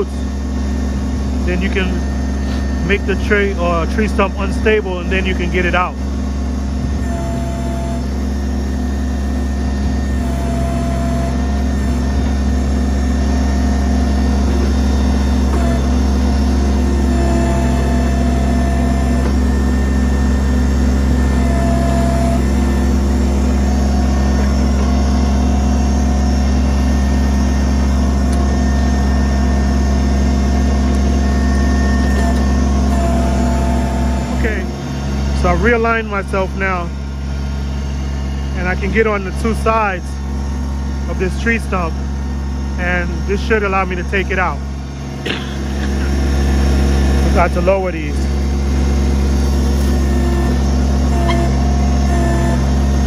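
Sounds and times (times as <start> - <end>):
diesel engine running: 0.0 - 53.0
hydraulic whine: 0.0 - 53.0.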